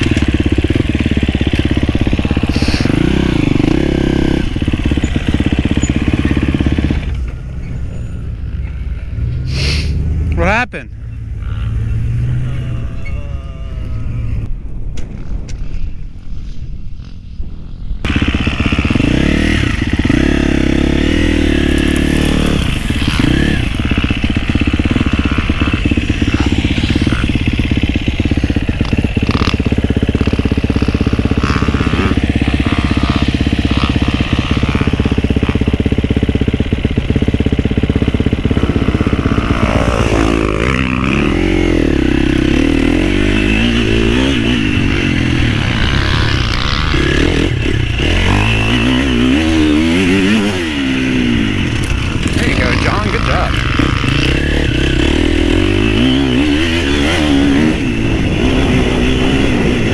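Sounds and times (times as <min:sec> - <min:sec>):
dirt bike engine revving: 0:00.0 - 0:14.5, 0:18.0 - 0:59.9.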